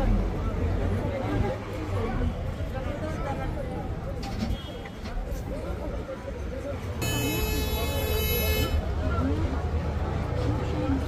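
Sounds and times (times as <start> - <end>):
street chatter: 0.0 - 11.0.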